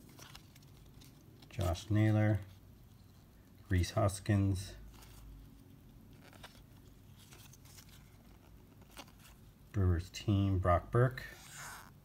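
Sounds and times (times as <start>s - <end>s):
cards being shuffled by hand: 0.0s - 2.7s, 3.8s - 9.6s.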